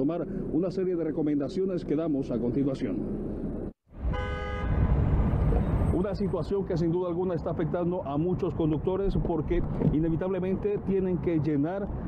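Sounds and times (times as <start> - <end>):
city traffic noise: 0.0 - 12.0
car horn honking: 4.0 - 5.0.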